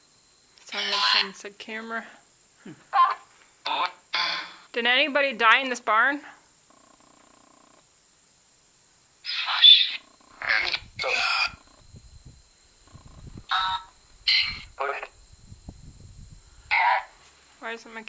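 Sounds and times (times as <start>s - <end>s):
faint steady tone: 0.0s - 18.0s
harsh garbled voice-like bursts: 0.7s - 1.4s, 3.0s - 4.6s, 9.2s - 11.6s, 13.5s - 15.1s.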